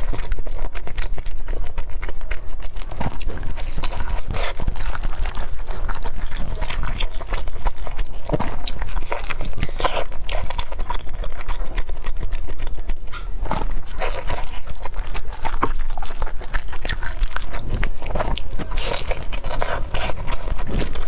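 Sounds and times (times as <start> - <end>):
chewing with mouth clicks: 0.0 - 21.0.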